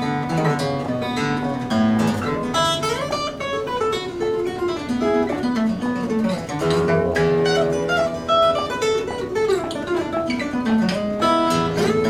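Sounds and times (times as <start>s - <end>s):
fingerstyle acoustic guitar: 0.0s - 12.0s
strummed guitar chords: 0.0s - 12.0s.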